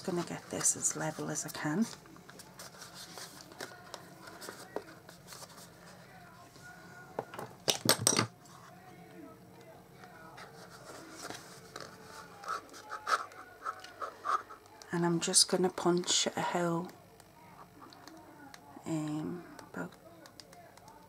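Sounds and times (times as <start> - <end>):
paper rustling: 0.0 - 6.1, 10.4 - 14.6
rustling scrape of card: 10.4 - 14.6.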